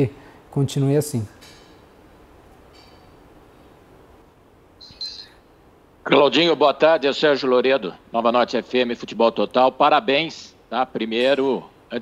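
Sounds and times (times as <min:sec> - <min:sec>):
bird chirping: 0:04.8 - 0:05.6.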